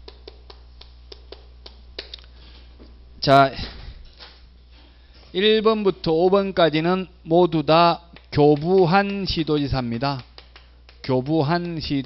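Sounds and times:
chalk tapping on chalkboard: 0:08.2 - 0:12.0.

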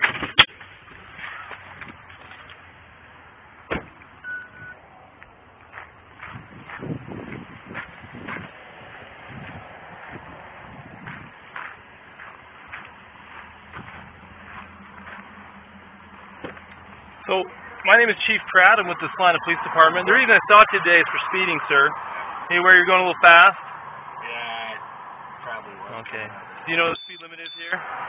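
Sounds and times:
car idling hum: 0:00.6 - 0:28.0
short beep: 0:04.2 - 0:04.8, 0:26.9 - 0:27.8
footsteps on gravel: 0:05.1 - 0:17.2.

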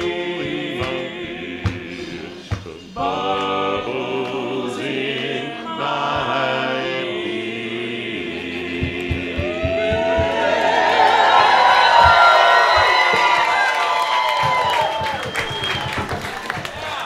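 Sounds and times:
men singing in harmony: 0:00.0 - 0:11.1
crowd voices: 0:00.4 - 0:17.0
claps or knocks: 0:02.5 - 0:02.7, 0:08.8 - 0:17.0.

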